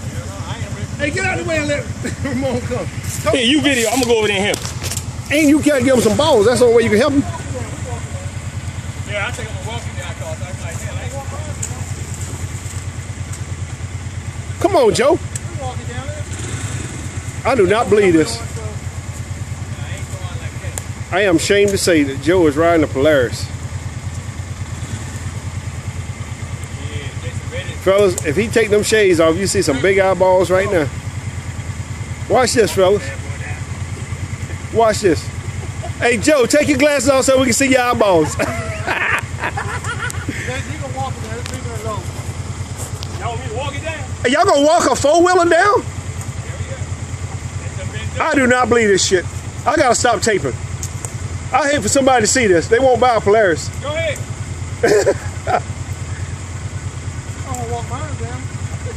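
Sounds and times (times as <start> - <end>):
engines idling: 0.0 - 58.9.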